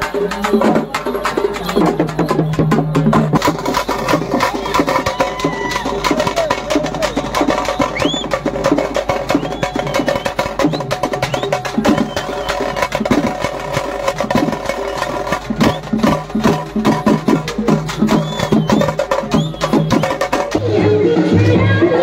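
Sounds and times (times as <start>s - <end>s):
snare and bass drums playing: 0.0s - 21.6s
high whistle-like glides: 7.0s - 8.4s, 18.1s - 20.2s.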